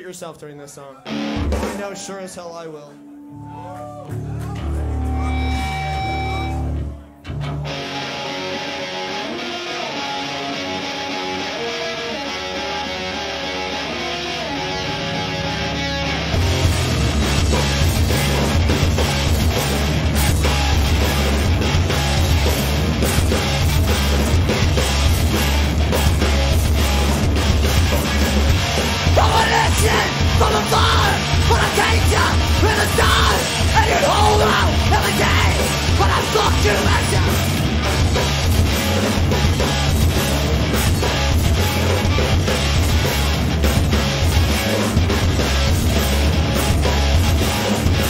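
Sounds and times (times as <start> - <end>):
live rock band playing: 1.0 - 1.9, 3.0 - 48.0
electric guitar picking melody: 4.1 - 48.0
person yelling vocals: 29.1 - 37.5.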